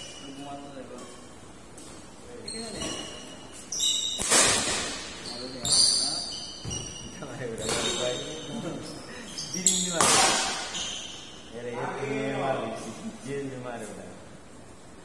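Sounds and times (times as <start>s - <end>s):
sneakers squeaking on court: 1.8s - 11.5s
rackets hitting shuttlecock: 4.0s - 5.2s, 9.9s - 10.8s.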